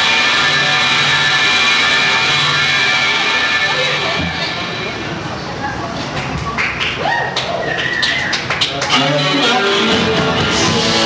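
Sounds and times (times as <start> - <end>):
electric guitar through amplifier: 0.0 - 6.6, 7.5 - 11.0.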